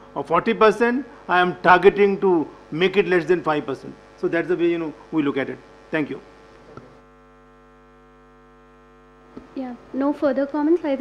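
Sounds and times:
faint mains hum: 0.0s - 11.0s.

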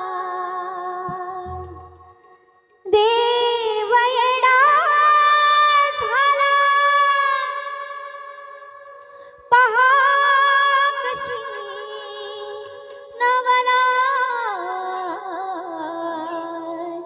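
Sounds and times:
woman singing ornamented phrases: 0.0s - 2.2s, 2.9s - 17.0s.

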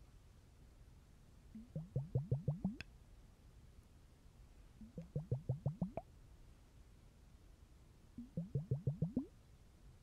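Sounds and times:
water bubbling liquid plops: 1.6s - 2.8s, 5.0s - 6.0s, 8.2s - 9.3s.

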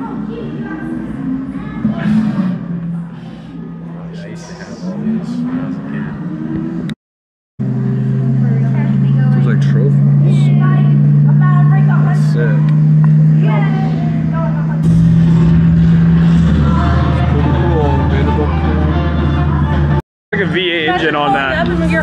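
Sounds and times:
people talking: 0.0s - 6.2s, 8.3s - 15.1s, 16.5s - 19.1s, 20.4s - 22.0s
low engine-like drone: 0.0s - 7.0s, 7.6s - 22.0s.

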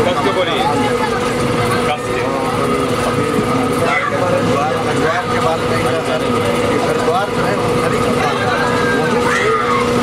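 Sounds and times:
men talking: 0.0s - 10.0s
steady hum tones: 0.0s - 10.0s
train running rumble: 0.0s - 10.0s.

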